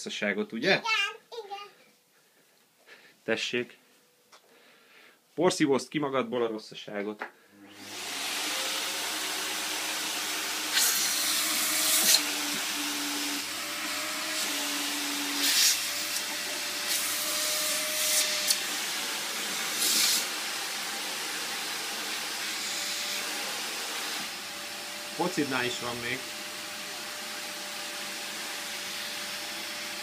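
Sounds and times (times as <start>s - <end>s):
vacuum cleaner running: 7.6s - 30.0s.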